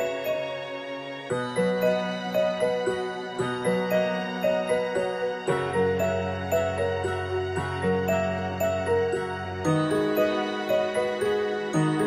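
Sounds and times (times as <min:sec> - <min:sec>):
slow melody over low bass: 0:00.0 - 0:12.0.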